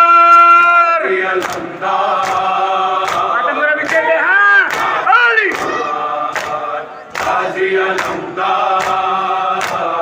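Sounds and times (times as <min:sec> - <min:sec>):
men chanting in unison: 0:00.0 - 0:10.0
voice crying out: 0:05.0 - 0:06.0.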